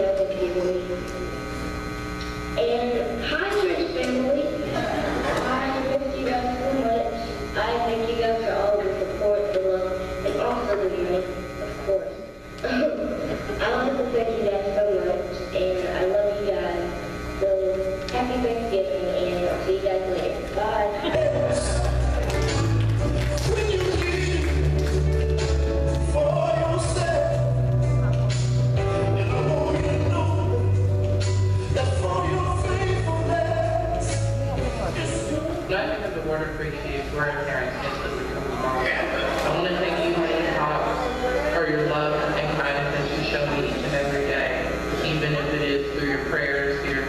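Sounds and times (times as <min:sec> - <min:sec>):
girl's voice over loudspeakers: 0:00.0 - 0:01.1, 0:02.6 - 0:21.8
electrical hum from sound system: 0:00.0 - 0:47.0.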